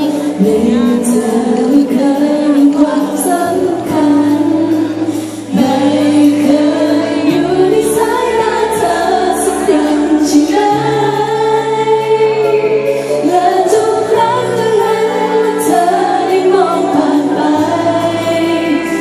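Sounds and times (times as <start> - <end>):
woman singing into a microphone: 0.0 - 19.0.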